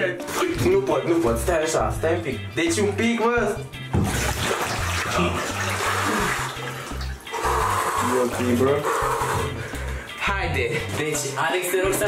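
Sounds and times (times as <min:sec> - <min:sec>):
bathwater sloshing and splashing: 0:03.8 - 0:11.5.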